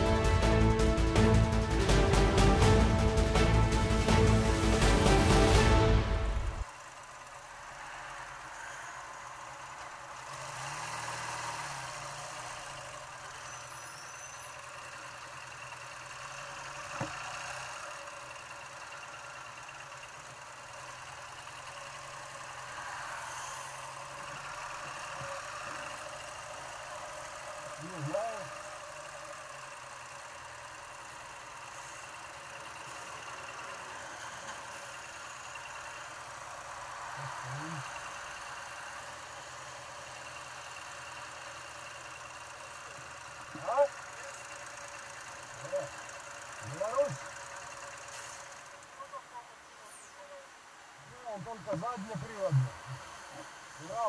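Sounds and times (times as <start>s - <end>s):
motorcycle engine idling: 0.0s - 10.7s, 11.3s - 54.0s
trucks idling: 0.0s - 54.0s.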